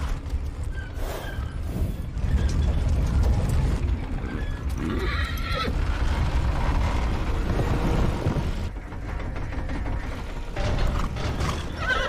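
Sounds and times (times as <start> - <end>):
horse whinnying: 4.2 - 5.8, 11.4 - 12.0.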